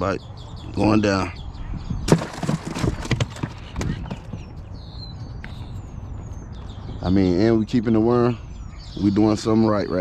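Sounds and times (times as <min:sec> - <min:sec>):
faint bird chirps: 0:03.4 - 0:10.0.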